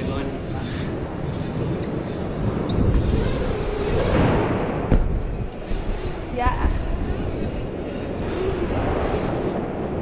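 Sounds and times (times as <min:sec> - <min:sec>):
bike tyres rolling on wooden ramps: 0:00.0 - 0:10.0.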